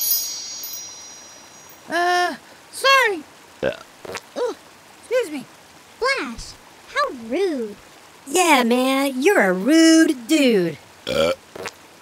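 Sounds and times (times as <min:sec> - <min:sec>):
chime-like shimmer effect: 0:00.0 - 0:01.9
cartoon burp: 0:03.6 - 0:03.9, 0:11.1 - 0:11.7.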